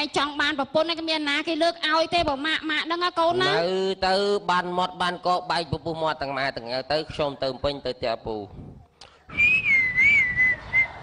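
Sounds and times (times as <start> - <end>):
high wavering whistle tone: 9.3 - 11.0.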